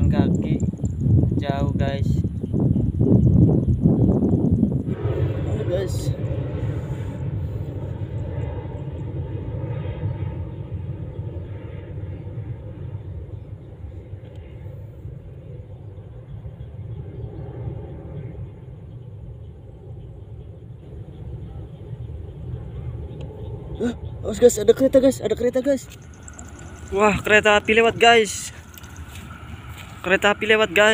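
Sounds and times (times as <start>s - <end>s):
low steady rumble: 0.0s - 30.9s.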